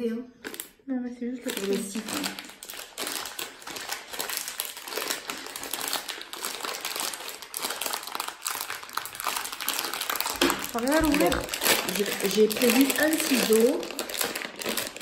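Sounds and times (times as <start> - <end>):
plastic packet crinkling: 0.4 - 0.8, 1.4 - 15.0.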